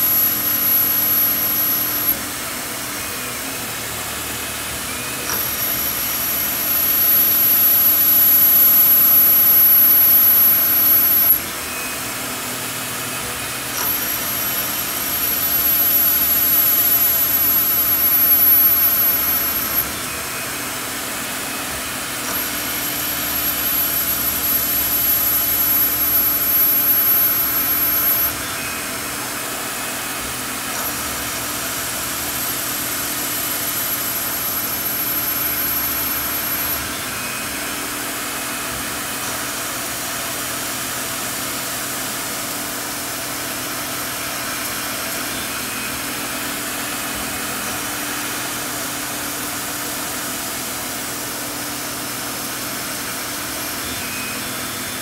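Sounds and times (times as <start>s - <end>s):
thin high whine: 0.0s - 11.7s, 13.2s - 40.4s
lathe machining steel: 0.0s - 55.0s.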